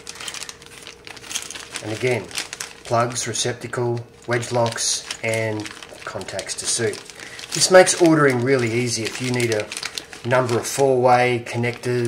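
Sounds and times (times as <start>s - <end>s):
plastic bag crinkling: 0.0s - 12.0s
person speaking: 1.7s - 12.0s.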